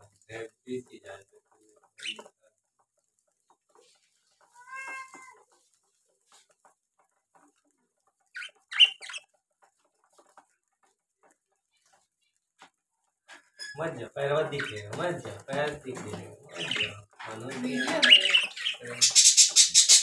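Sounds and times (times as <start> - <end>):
bird calls and chirps: 2.0 - 2.4, 8.2 - 9.3, 16.5 - 20.0.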